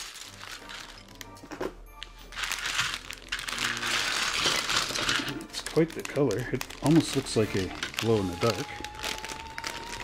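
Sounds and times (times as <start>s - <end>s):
plastic bag crinkling: 0.0s - 1.4s, 2.0s - 10.0s
background music: 0.0s - 10.0s.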